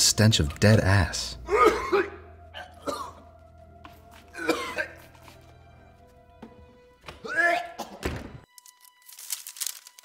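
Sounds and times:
soft background music: 0.0s - 10.0s
man gagging and coughing: 1.4s - 3.2s, 4.3s - 5.0s, 7.3s - 8.1s.

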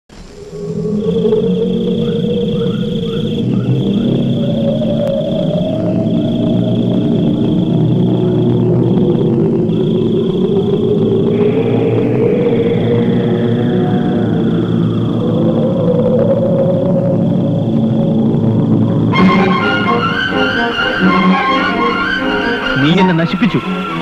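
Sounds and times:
steady low hum: 0.1s - 20.1s
high-pitched insect trill: 0.2s - 24.0s.

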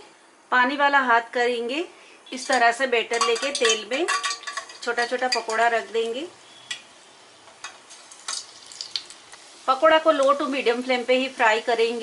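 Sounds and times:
batter sizzling in hot oil: 2.3s - 12.0s
sharp clicks and pops: 7.6s - 9.4s.

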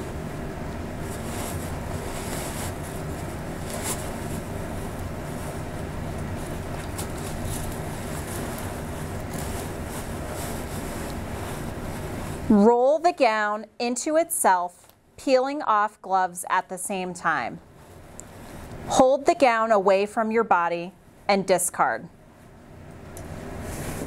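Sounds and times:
steady low hum: 0.0s - 24.0s
plastic gown rustling and crinkling: 0.9s - 12.6s.

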